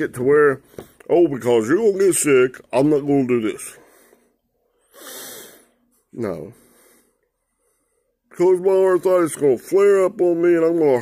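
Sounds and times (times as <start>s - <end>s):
man breathing: 3.7s - 8.3s.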